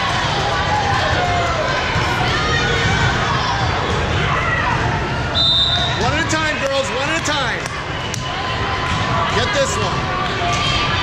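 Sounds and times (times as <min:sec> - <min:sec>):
crowd noise in hall: 0:00.0 - 0:11.0
referee whistle blast: 0:05.4 - 0:06.0.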